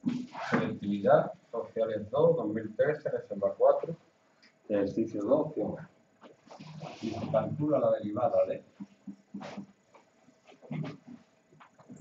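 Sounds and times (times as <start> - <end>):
low voice murmur: 6.6 - 8.0
marker writing on whiteboard: 8.7 - 12.0.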